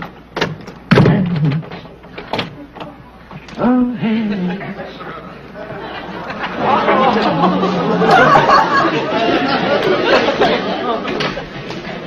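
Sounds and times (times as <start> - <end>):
indistinct voices talking: 2.9 - 11.6.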